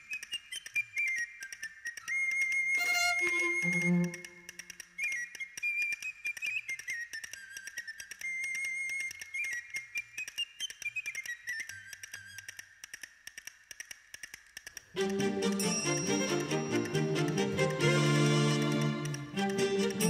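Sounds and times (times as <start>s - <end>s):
whistled melody: 0.0s - 12.4s, 15.0s - 20.0s
faint clicks: 0.0s - 15.7s.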